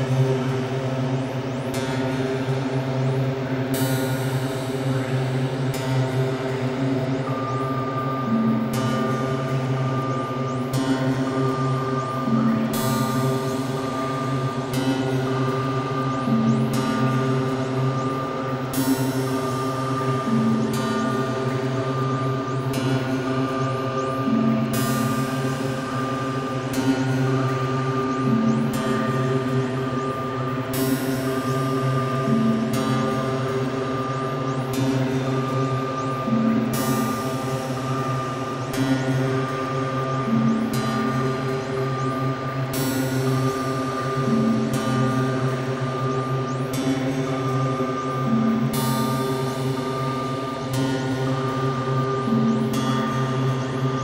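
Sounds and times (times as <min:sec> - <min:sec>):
sustained synth drone: 0:00.0 - 0:54.0.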